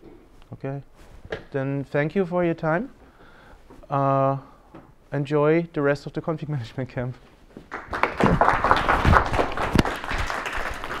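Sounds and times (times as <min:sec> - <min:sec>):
audience applauding: 0:07.7 - 0:11.0.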